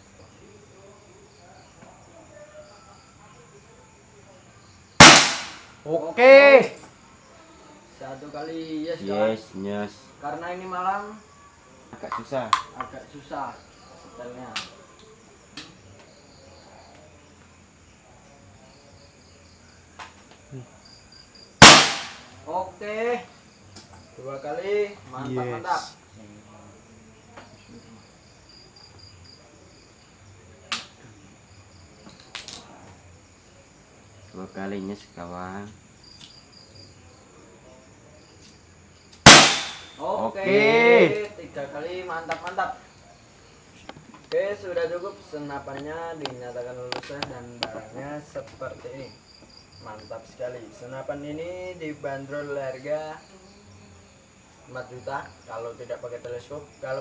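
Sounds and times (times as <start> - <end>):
crickets chirring: 0.0 - 57.0
air rifle shot: 5.0 - 5.7, 21.6 - 22.3, 39.2 - 40.0.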